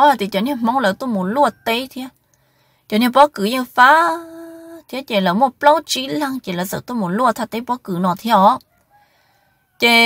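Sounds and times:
rooster crowing: 8.7 - 9.9.

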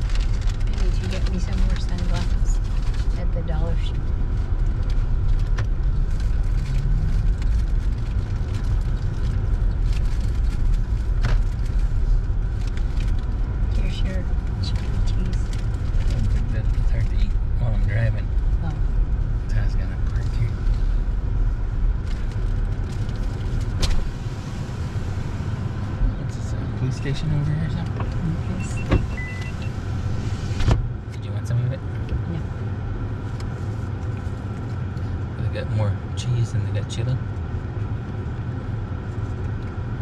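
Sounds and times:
car engine and tyre rumble: 0.0 - 40.0.

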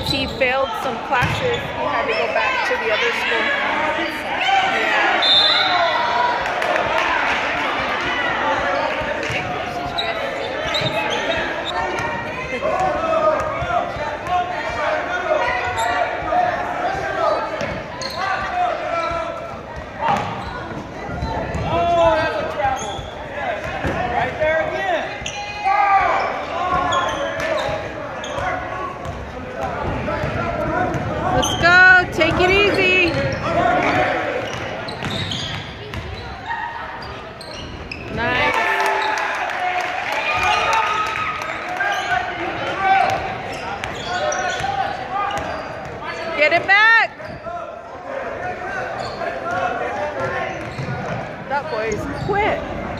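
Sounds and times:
voices of players and spectators: 0.0 - 52.9
basketball bouncing on wood floor: 1.2 - 1.4.

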